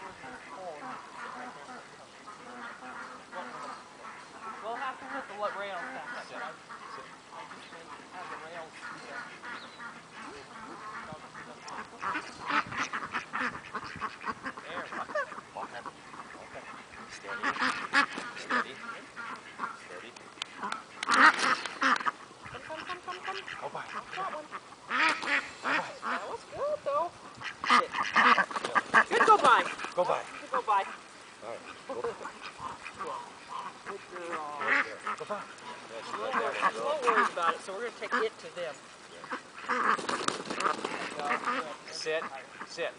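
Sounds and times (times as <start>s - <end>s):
ducks quacking: 0.0s - 42.9s.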